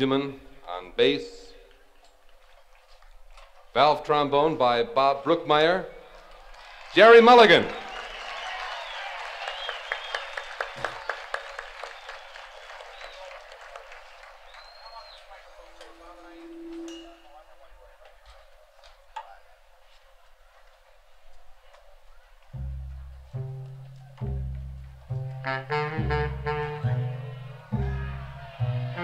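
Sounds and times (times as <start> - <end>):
audience applauding: 6.2 - 16.9, 27.4 - 29.0
crowd murmur: 7.7 - 29.0
low held note: 15.8 - 17.6.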